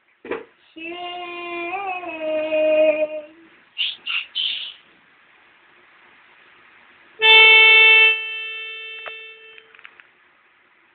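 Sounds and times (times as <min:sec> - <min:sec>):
held keyboard note: 0:07.2 - 0:09.8.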